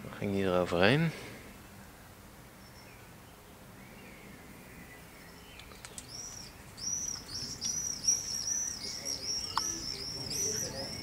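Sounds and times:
swifts screaming: 6.0s - 11.0s.

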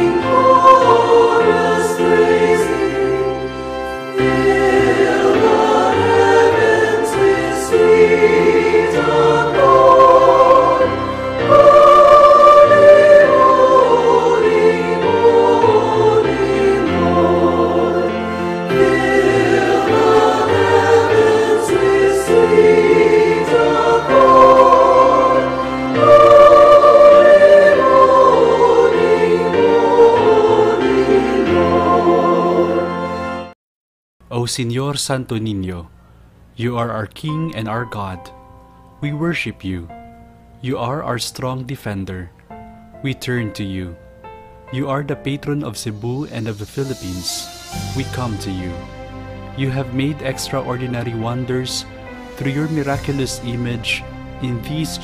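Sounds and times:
choir singing a hymn: 0.0s - 33.5s, 44.8s - 55.0s
low accompanying notes: 0.0s - 33.5s, 36.5s - 55.0s.

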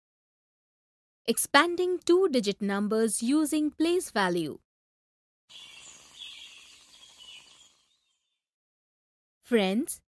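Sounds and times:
birds chirping: 5.5s - 8.4s.

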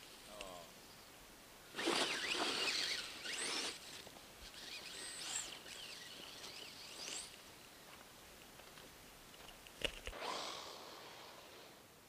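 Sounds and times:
electric motor whining: 1.8s - 7.4s.

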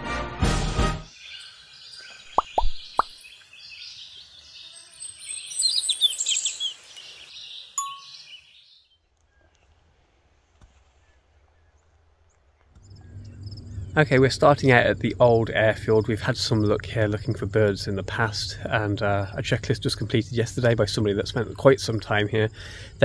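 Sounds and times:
birds chirping: 1.1s - 9.9s, 10.7s - 23.0s
ding: 7.8s - 8.3s
faint hum: 12.8s - 23.0s.

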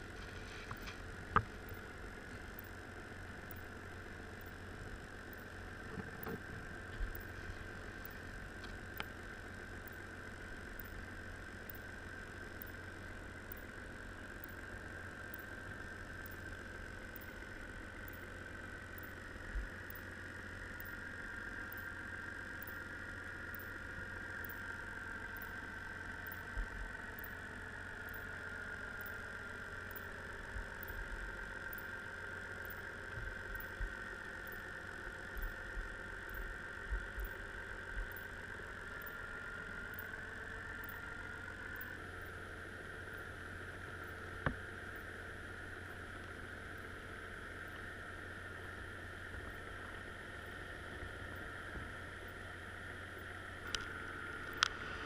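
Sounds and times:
underwater boat engine drone: 0.0s - 55.0s.

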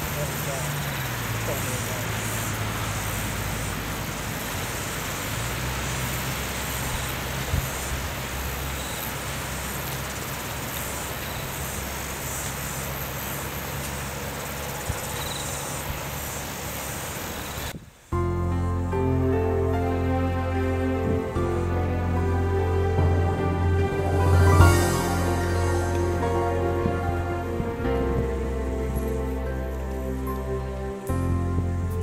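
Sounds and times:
high-pitched insect chorus: 0.0s - 17.7s, 24.0s - 31.0s
low steady rumble: 18.2s - 32.0s.

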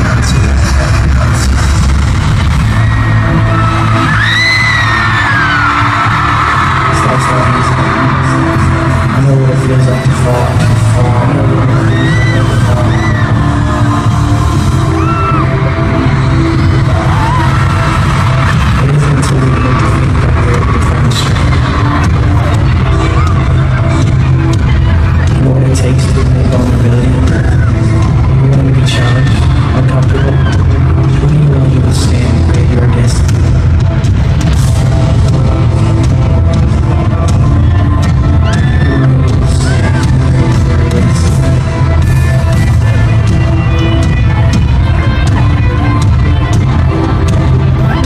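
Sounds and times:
crowd screaming: 0.0s - 33.0s, 34.0s - 48.0s
amplified concert music with bass: 0.0s - 48.0s.

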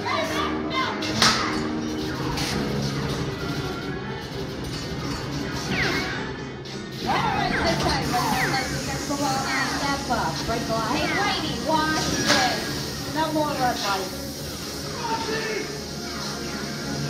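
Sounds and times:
soundtrack music: 0.0s - 17.0s.

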